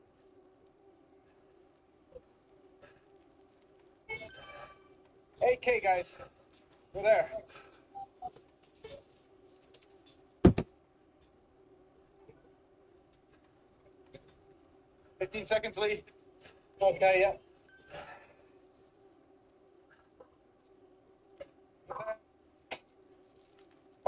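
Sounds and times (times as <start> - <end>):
steady low hum: 0.0 - 24.0
man speaking over voice chat: 5.4 - 6.3, 6.9 - 7.5, 15.2 - 16.1, 16.8 - 17.4.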